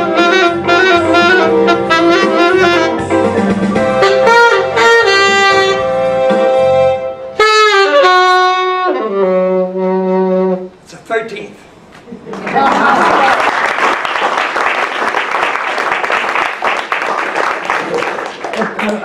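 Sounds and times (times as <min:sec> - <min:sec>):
saxophone playing: 0:00.0 - 0:10.8
audience applauding: 0:12.3 - 0:19.0.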